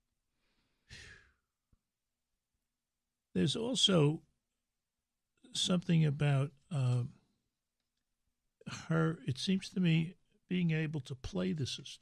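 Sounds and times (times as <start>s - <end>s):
person breathing: 0.4s - 1.5s.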